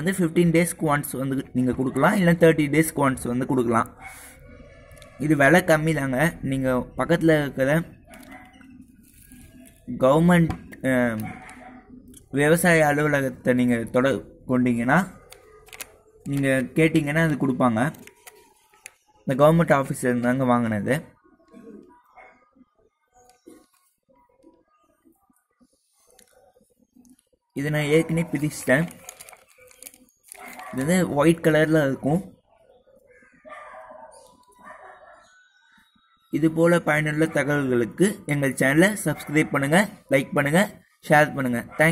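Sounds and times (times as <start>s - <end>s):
man speaking: 0.0s - 4.1s, 5.1s - 8.0s, 9.9s - 11.5s, 12.2s - 15.3s, 16.2s - 18.1s, 19.3s - 21.2s, 27.6s - 29.1s, 30.5s - 32.4s, 36.3s - 41.9s.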